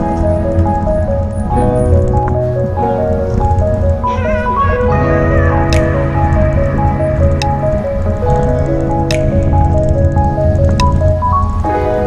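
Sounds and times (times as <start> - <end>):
music with held notes and bass: 0.0 - 12.0.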